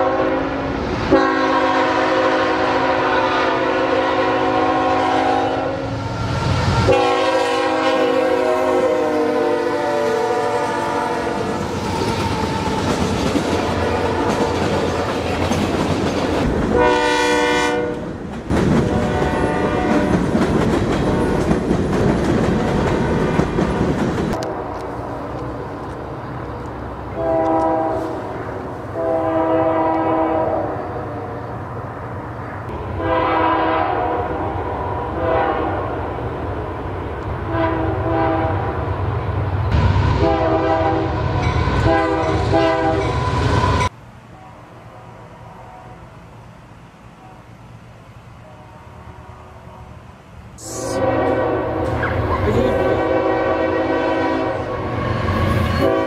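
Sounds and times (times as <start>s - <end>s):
locomotive air horn blasts: 0.0s - 6.2s, 6.8s - 11.6s, 13.6s - 14.6s, 16.7s - 18.1s, 18.8s - 20.2s, 27.1s - 30.9s, 32.8s - 34.5s, 35.2s - 35.9s, 37.5s - 38.8s, 40.2s - 43.2s, 50.6s - 56.0s
distant train horn blasts: 0.0s - 12.8s, 13.4s - 15.2s, 16.7s - 18.1s, 18.8s - 20.3s, 24.3s - 25.4s, 27.1s - 31.4s, 32.7s - 36.1s, 37.4s - 38.9s, 40.1s - 46.0s, 48.4s - 50.0s, 50.6s - 56.0s
train wheels clacking over rails: 11.3s - 16.8s, 17.9s - 24.4s.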